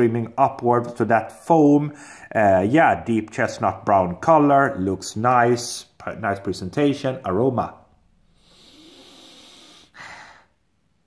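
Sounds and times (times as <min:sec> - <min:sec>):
man sniffing: 0:08.3 - 0:10.6.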